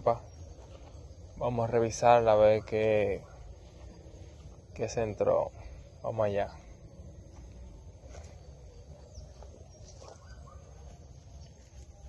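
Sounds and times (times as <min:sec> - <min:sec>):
faint bird chirps: 0:00.0 - 0:12.0
low rumble: 0:03.2 - 0:10.0.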